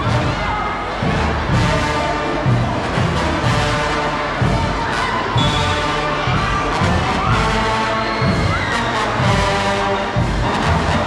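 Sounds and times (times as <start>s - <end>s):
brass marching band playing: 0.0s - 11.0s
crowd cheering and shouting: 0.0s - 11.0s.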